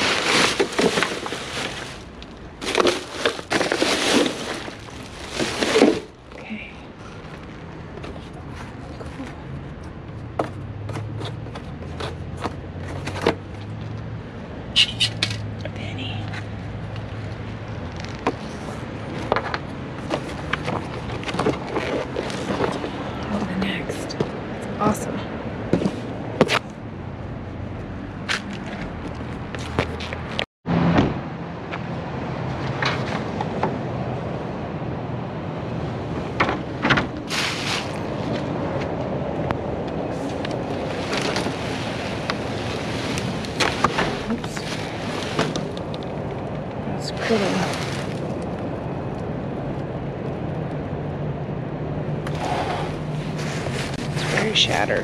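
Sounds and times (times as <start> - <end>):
cardboard scraping and rustling: 0.0 - 6.2, 20.0 - 23.0, 36.9 - 38.4, 40.2 - 45.9, 52.3 - 54.6.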